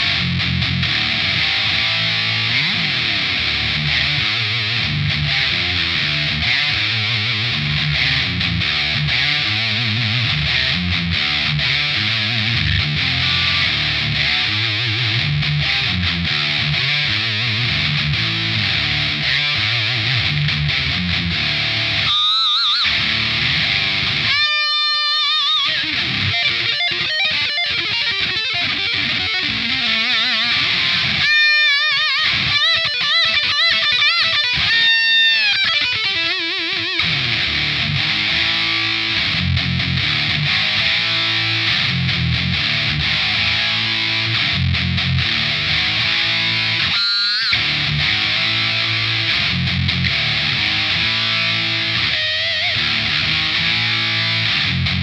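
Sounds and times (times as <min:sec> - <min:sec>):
distorted heavy metal electric guitar: 0:00.0 - 0:55.0.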